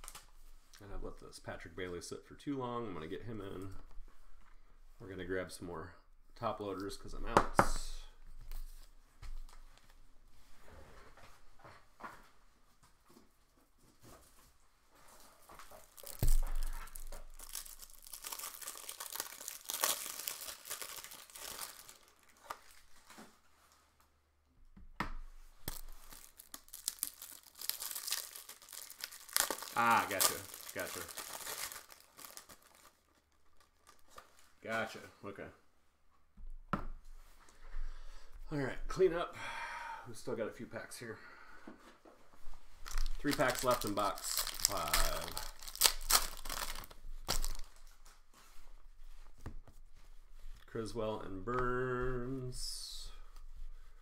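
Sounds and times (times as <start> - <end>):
plastic wrapping crinkling and tearing: 0.0 - 0.8, 15.6 - 23.4, 25.6 - 35.0, 42.7 - 48.3.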